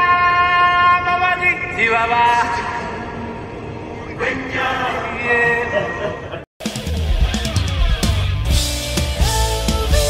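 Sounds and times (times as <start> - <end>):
man vocalising or laughing: 5.5 - 6.4.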